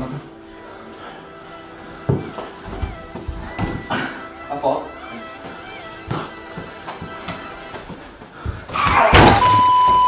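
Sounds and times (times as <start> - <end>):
background music: 0.0 - 10.0
thuds of players' feet: 2.1 - 4.0, 6.1 - 10.0.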